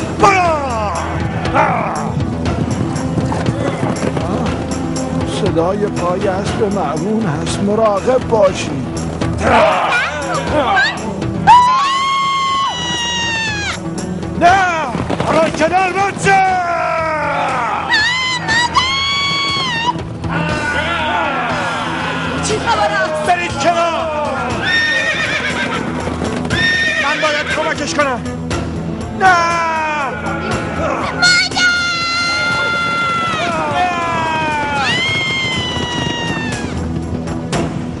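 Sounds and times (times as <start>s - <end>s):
background music: 0.0s - 38.0s
child crying out in fright: 30.9s - 36.8s.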